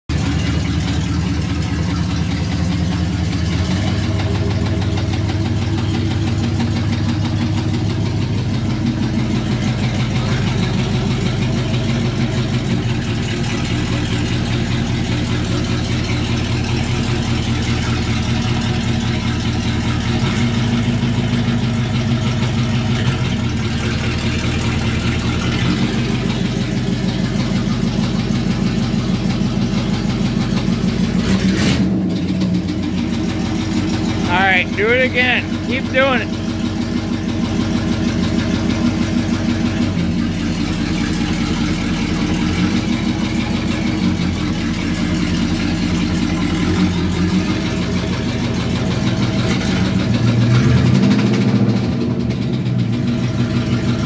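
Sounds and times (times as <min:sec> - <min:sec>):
car engine idling with knock: 0:00.1 - 0:54.0.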